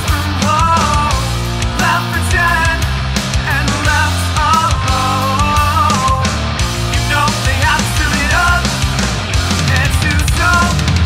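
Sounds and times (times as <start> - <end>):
drums steady beat: 0.0 - 11.0
sustained bass line: 0.0 - 11.0.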